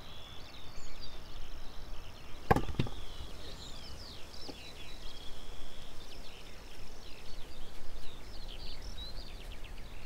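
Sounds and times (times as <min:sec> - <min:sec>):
birds chirping faintly: 0:00.0 - 0:10.0.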